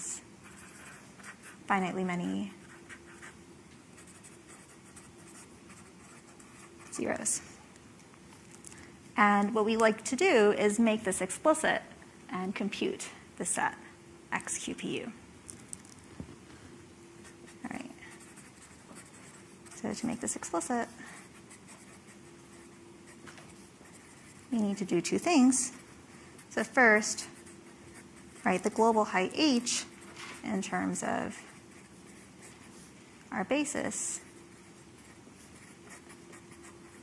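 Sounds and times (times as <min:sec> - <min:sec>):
steady low hum: 0:00.0 - 0:37.0
marker scratching on paper: 0:00.4 - 0:01.6, 0:04.0 - 0:07.0, 0:17.5 - 0:32.9, 0:34.1 - 0:37.0
marker writing on paper: 0:21.3 - 0:24.9, 0:34.2 - 0:37.0.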